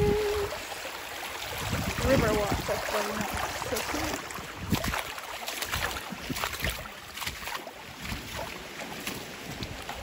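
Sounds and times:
river water splashing: 0:00.0 - 0:10.0
wind rumbling on microphone: 0:00.0 - 0:10.0.

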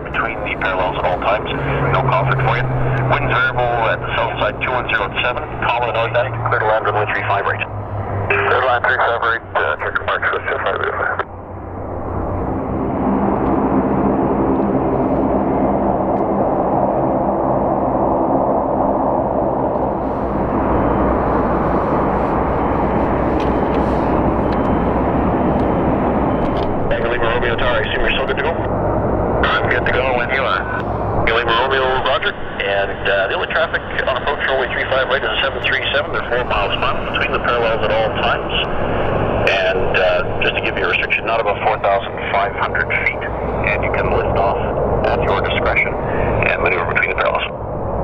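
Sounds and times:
radio voices: 0:00.0 - 0:11.3, 0:26.5 - 0:28.7, 0:29.4 - 0:47.6
aircraft engine roar: 0:00.0 - 0:48.0.

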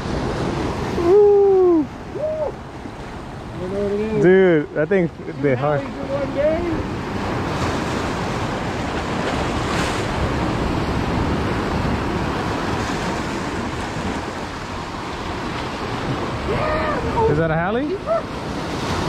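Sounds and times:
ocean surf breaking on rocks: 0:00.0 - 0:19.0
wind buffeting microphone: 0:00.0 - 0:19.0.

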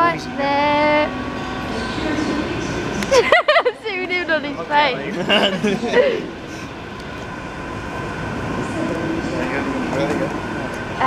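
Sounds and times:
indistinct voices: 0:00.0 - 0:03.2.

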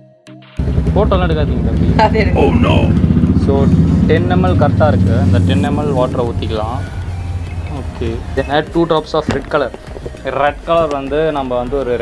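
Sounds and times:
steady low drone: 0:00.6 - 0:08.9
man speaking: 0:02.3 - 0:06.8.

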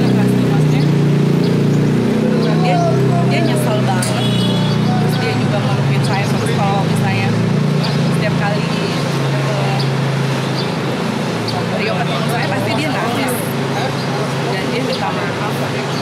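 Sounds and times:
woman talking: 0:00.0 - 0:01.1, 0:02.5 - 0:04.4, 0:05.0 - 0:10.0, 0:11.6 - 0:13.6, 0:14.4 - 0:16.0.

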